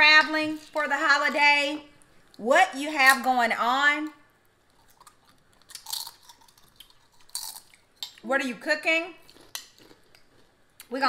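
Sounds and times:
crunching chips: 4.7s - 7.9s, 9.2s - 10.6s.

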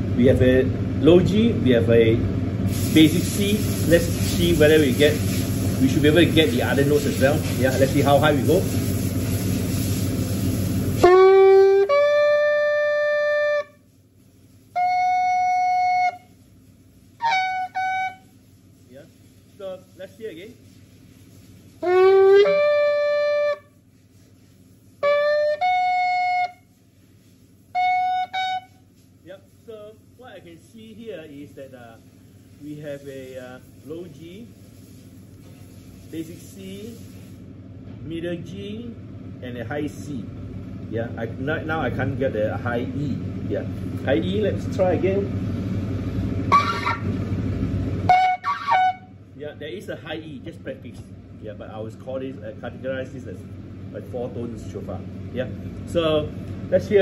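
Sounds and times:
horn shofar blasts: 10.9s - 13.9s, 14.7s - 16.4s, 17.2s - 18.4s, 21.8s - 23.8s, 25.0s - 26.8s, 27.7s - 29.0s, 46.5s - 47.1s, 48.0s - 49.2s.

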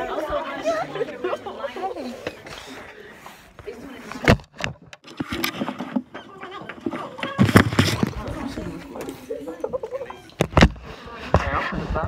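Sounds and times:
teenagers talking and laughing: 0.0s - 12.0s
knocks and rubbing on microphone: 6.9s - 8.9s, 10.4s - 12.0s.

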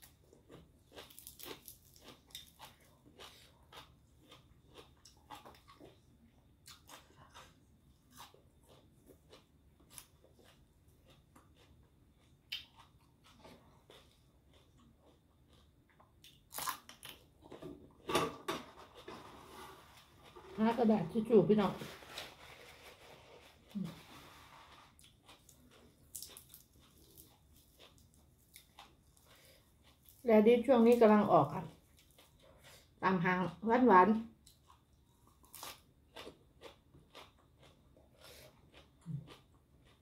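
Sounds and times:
crisp crunch of raw greens: 0.0s - 5.7s, 35.3s - 40.0s
crisp crunches of chewing greens: 0.0s - 6.0s, 16.3s - 17.3s, 21.6s - 30.3s, 34.5s - 40.0s.

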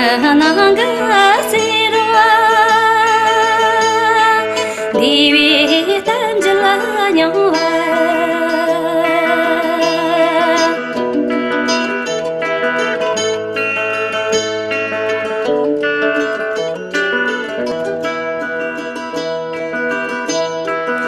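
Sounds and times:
plucked lute melody: 0.0s - 21.0s.

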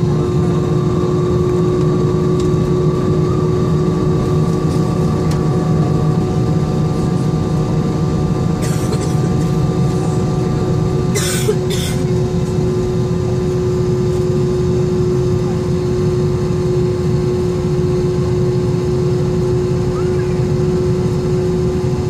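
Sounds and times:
aircraft cabin drone: 0.0s - 22.0s
constant hum tone: 0.0s - 22.0s.

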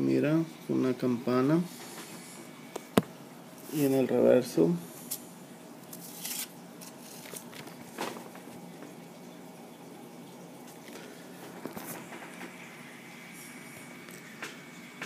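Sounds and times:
paper banknote rustle: 5.9s - 8.2s.

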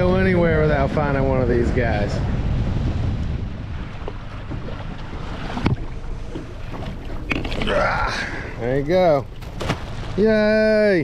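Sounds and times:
wind rumbling on microphone: 0.0s - 10.6s.

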